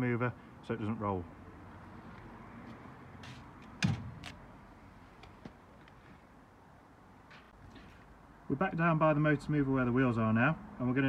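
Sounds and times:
sharp clunk: 3.8 - 4.4.

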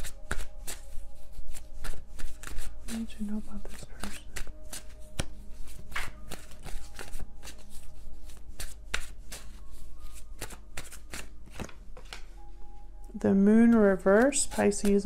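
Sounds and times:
cards being shuffled by hand: 0.0 - 12.3, 13.6 - 15.0.

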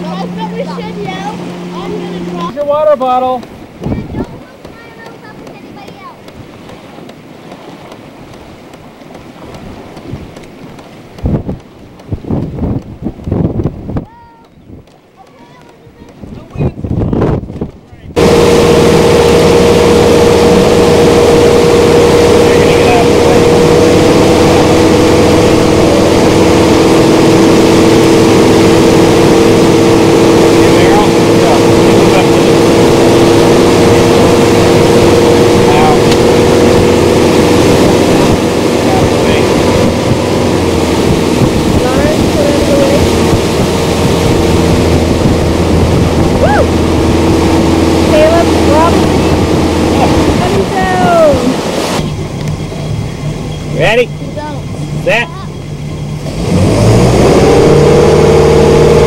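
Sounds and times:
boat engine running: 0.0 - 59.0
wake rushing: 0.0 - 59.0
wind on microphone: 3.5 - 53.6.

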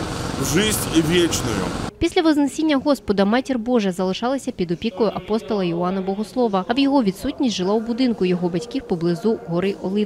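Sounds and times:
man speaking: 0.4 - 1.8.

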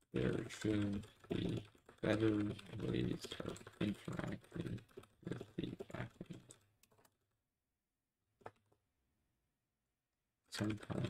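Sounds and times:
keyboard typing: 0.1 - 7.2.

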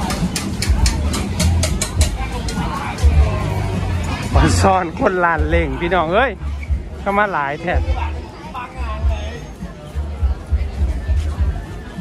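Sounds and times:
music with heavy bass beat: 0.0 - 7.0
crowd chatter: 0.0 - 12.0.

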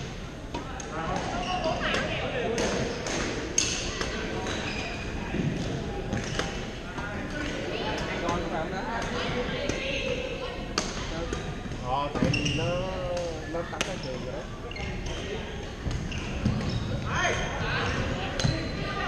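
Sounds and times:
sneakers squeaking on floor: 4.4 - 6.7, 12.2 - 12.9, 13.9 - 19.0.

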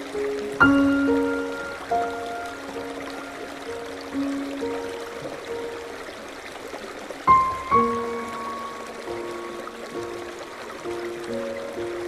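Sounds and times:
soft relaxation music: 0.0 - 12.0
stream water rushing: 0.0 - 12.0.

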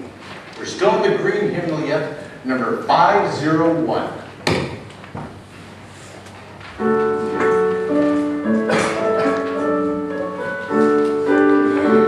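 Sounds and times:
murmur of large crowd indoors: 0.0 - 12.0.

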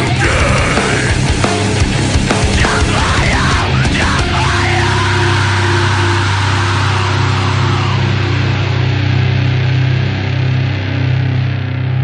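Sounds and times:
distorted heavy metal chord: 0.0 - 12.0.

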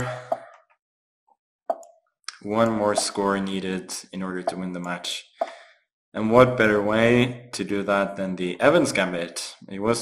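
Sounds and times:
chess move click: 1.7 - 3.2, 4.4 - 5.6.

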